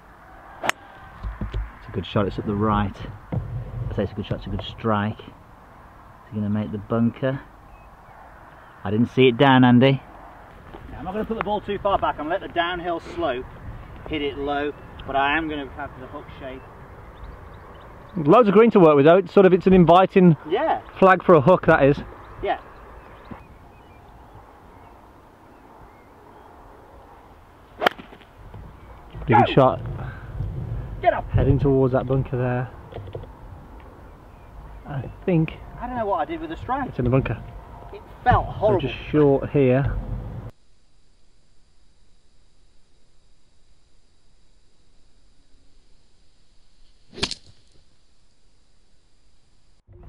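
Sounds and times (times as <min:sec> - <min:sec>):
golf club striking ball: 0:00.6 - 0:01.6, 0:27.8 - 0:28.2, 0:47.1 - 0:47.6.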